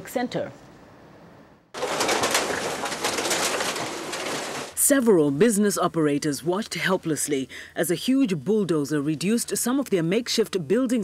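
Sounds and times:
wheel loader machine noise: 1.8s - 4.9s
debris crackling and crunching: 1.8s - 5.0s.

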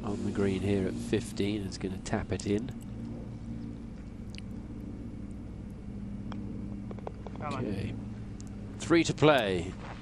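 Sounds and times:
low outdoor hum: 0.0s - 10.0s
putter tapping golf ball: 6.3s - 7.5s.

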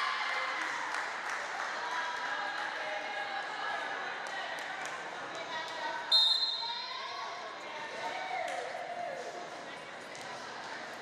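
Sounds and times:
referee whistle blast: 6.1s - 6.7s.

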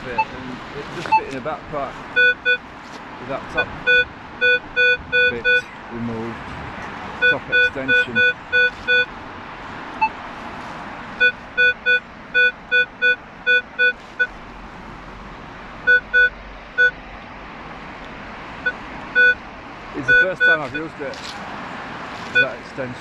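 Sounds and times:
metal detector beeps: 3.9s - 5.6s, 7.2s - 9.1s, 11.2s - 14.3s, 15.9s - 17.0s, 20.1s - 20.8s.

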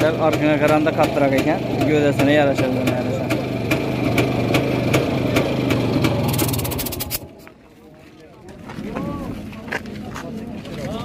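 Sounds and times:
motorcycle engine idling: 0.0s - 7.4s
sharp ticking: 6.0s - 7.2s.

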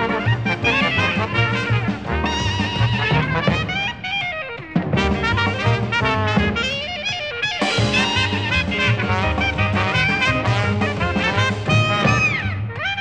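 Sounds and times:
jazz band playing a rag: 0.0s - 13.0s
trumpet note sliding downward: 5.0s - 6.9s, 7.6s - 13.0s.

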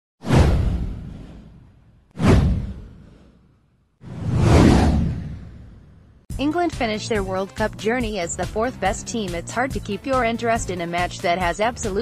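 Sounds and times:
whoosh with deep rumble: 0.2s - 6.3s.

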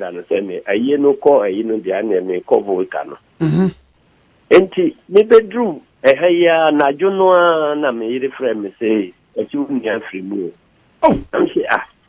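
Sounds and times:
man talking: 0.0s - 3.7s, 4.5s - 11.9s.

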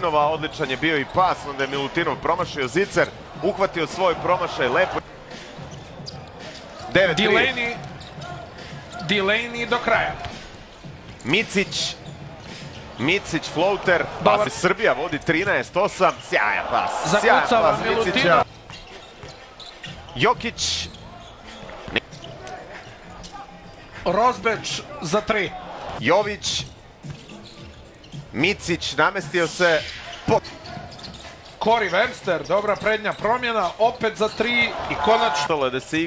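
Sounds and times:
arena crowd noise: 0.0s - 36.0s
basketball bouncing on court: 10.1s - 13.0s.

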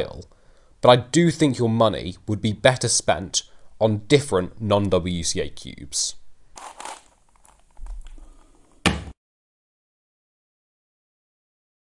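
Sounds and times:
knock on wooden table: 8.9s - 9.2s.

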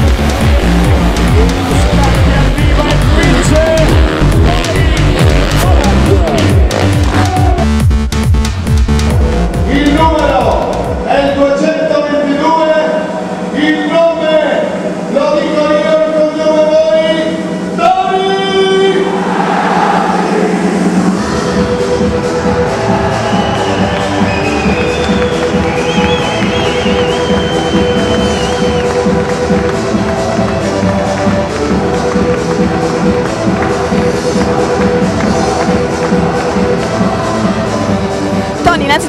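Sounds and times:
music with steady beat: 0.0s - 11.4s, 20.8s - 39.0s.

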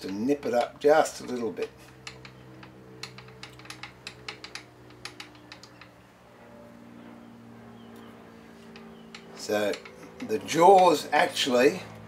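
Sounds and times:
light metallic clicks and taps: 0.0s - 5.9s, 8.0s - 11.0s
steady low hum: 0.0s - 12.0s.

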